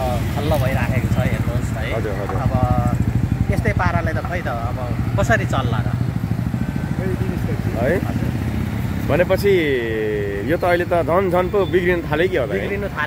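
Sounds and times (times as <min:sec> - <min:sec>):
man talking: 0:00.0 - 0:06.0, 0:06.9 - 0:08.3, 0:09.0 - 0:13.0
motorcycle engine running: 0:00.0 - 0:13.0
street traffic drone: 0:00.0 - 0:13.0.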